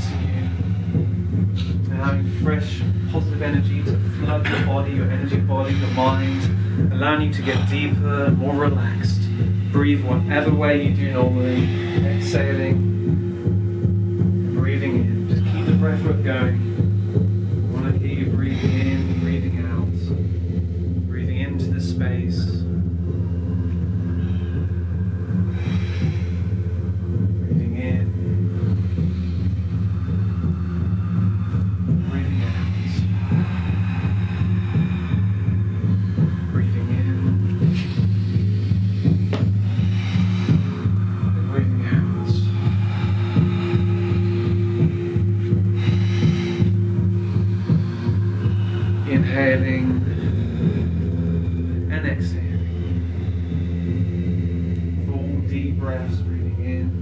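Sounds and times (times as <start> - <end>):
low humming drone: 0.0 - 57.0
people breathing deeply: 0.0 - 57.0.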